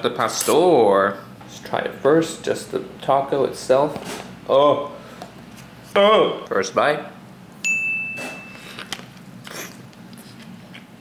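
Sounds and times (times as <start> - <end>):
bright ding: 7.6 - 8.8.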